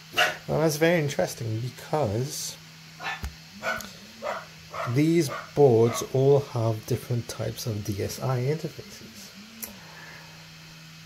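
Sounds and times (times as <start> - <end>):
dog barking: 0.2 - 0.4, 3.0 - 6.1.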